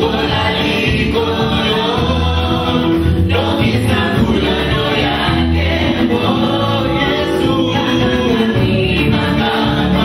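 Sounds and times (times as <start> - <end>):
live band music: 0.0 - 10.0
voices singing together: 0.0 - 10.0.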